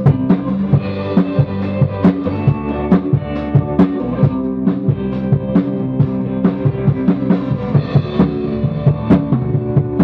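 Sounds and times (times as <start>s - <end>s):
drum kit beat: 0.0s - 10.0s
sustained guitar chords: 0.0s - 10.0s.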